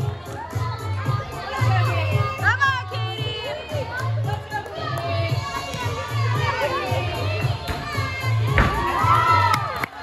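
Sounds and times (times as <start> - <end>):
girls cheering and shouting: 0.2 - 10.0
thump: 8.5 - 8.9.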